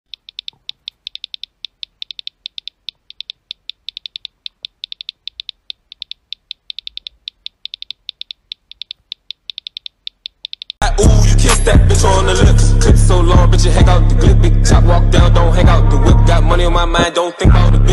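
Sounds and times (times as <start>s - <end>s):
phone keyboard key clicks: 0.1s - 10.8s.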